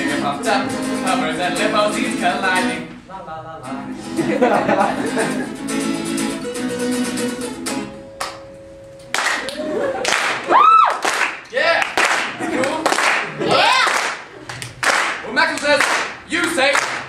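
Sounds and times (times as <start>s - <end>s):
audience clapping and cheering: 9.1s - 17.0s.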